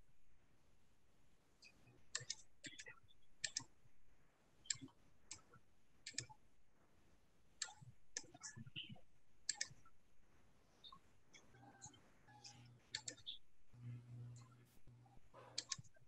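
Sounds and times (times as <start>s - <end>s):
computer mouse clicks: 2.1s - 3.7s, 4.6s - 6.4s, 7.6s - 9.9s, 10.8s - 13.4s, 15.5s - 16.0s.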